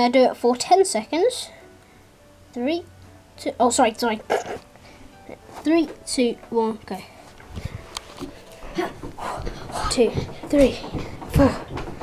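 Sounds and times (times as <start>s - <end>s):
person breathing: 4.8s - 5.2s, 7.1s - 10.4s
feet thudding on wooden floor: 7.5s - 12.0s.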